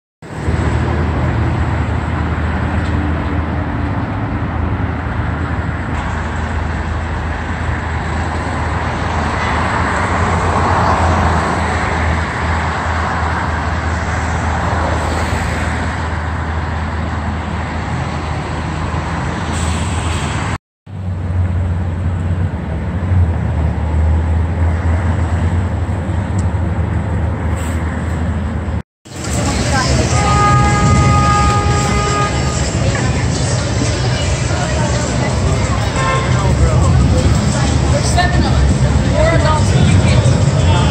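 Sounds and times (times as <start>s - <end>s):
passing cars and buses: 0.2s - 40.9s.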